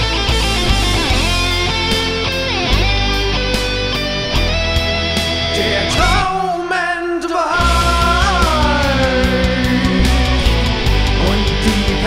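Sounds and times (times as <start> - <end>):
heavy metal electric guitar: 0.0 - 12.0.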